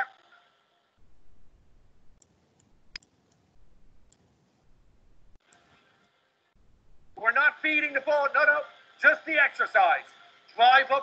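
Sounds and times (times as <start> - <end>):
faint low rumble: 1.0 - 5.4, 6.6 - 7.2
faint sharp clicks: 2.2 - 3.5.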